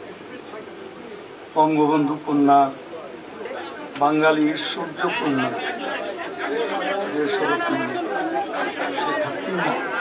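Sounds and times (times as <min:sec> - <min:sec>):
man talking into microphones: 0:03.9 - 0:05.8, 0:06.5 - 0:09.9.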